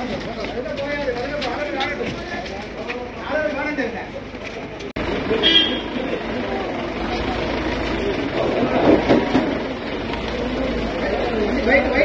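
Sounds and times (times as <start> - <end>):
crowd talking and calling out: 0.0 - 12.0
vehicle engine running: 0.0 - 12.0
vehicle horn toot: 5.4 - 6.0.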